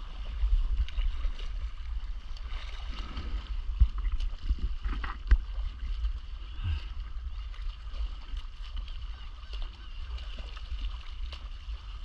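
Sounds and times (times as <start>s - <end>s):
water lapping and sloshing: 0.0s - 12.0s
wind rumble on microphone: 0.0s - 12.0s.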